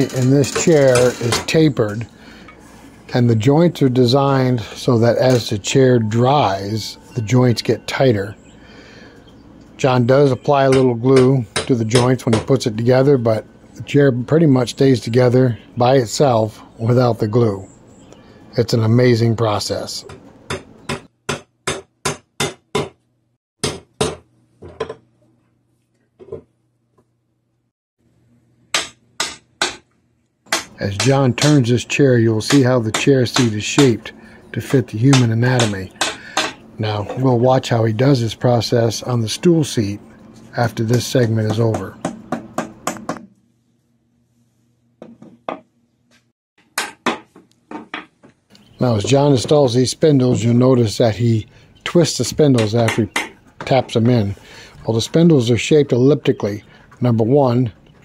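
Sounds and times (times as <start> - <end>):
hammer tapping wooden joints: 28.8 - 31.7, 32.4 - 34.0, 35.1 - 36.6.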